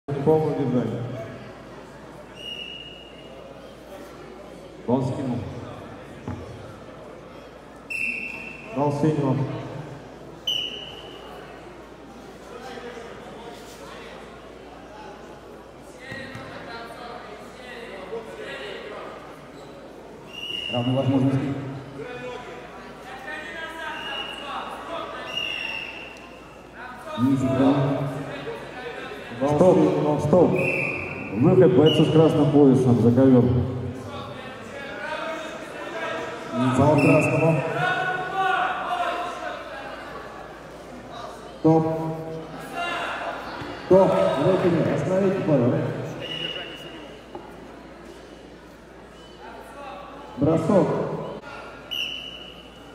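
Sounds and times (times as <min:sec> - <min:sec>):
murmur of sports hall: 0:00.0 - 0:52.9.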